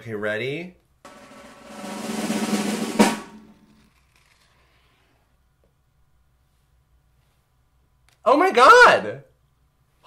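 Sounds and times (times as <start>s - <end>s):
sharp snare drum hit: 1.1s - 3.8s
snare drum roll: 1.1s - 3.8s.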